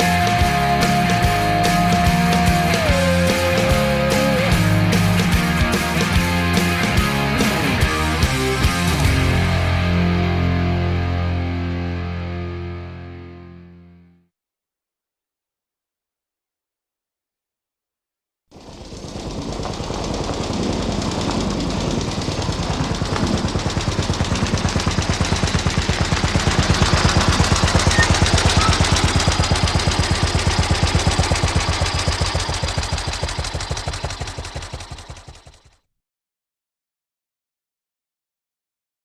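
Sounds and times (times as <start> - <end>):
rapid rattle of pulses: 18.5 - 35.8.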